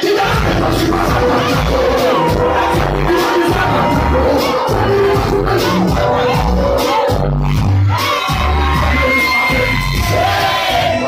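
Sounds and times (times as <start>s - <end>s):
dancehall music with heavy bass: 0.0s - 11.0s
large crowd noise: 0.0s - 11.0s
person singing: 0.0s - 11.0s.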